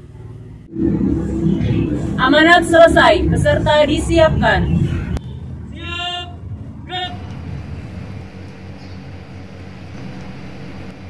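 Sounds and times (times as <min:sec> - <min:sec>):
low outdoor rumble: 0:00.0 - 0:11.0
man shouting command: 0:05.7 - 0:07.3.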